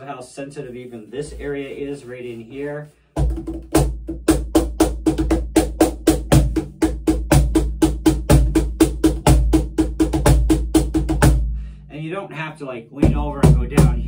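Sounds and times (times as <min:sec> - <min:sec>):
cajon played by hand: 0:03.2 - 0:11.4, 0:13.0 - 0:14.0.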